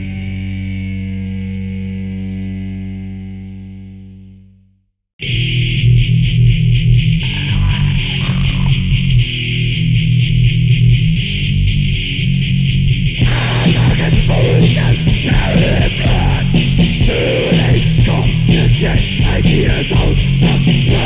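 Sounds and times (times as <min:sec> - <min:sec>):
heavy metal band playing: 0:00.0 - 0:03.0, 0:05.2 - 0:21.0.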